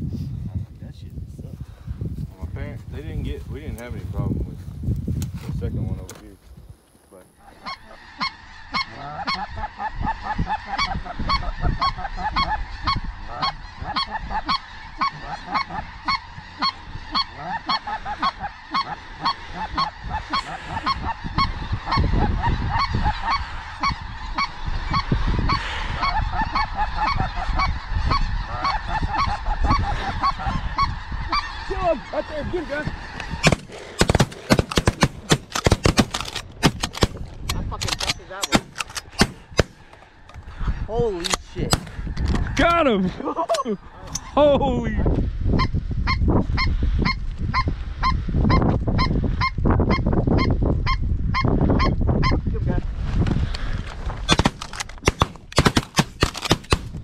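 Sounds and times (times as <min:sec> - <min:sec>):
geese honking: 0:07.4 - 0:37.2
shotgun shots: 0:33.4 - 0:37.2, 0:37.9 - 0:39.9, 0:41.7 - 0:42.0, 0:54.3 - 0:57.0.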